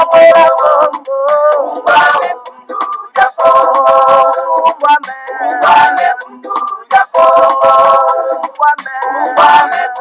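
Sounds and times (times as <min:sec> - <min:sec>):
person singing: 0:00.0 - 0:10.0.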